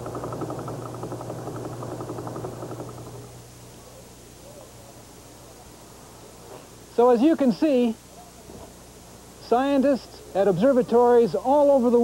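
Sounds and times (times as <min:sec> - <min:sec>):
rapid train of pulses: 0:00.0 - 0:03.4
faint hiss: 0:01.0 - 0:12.0.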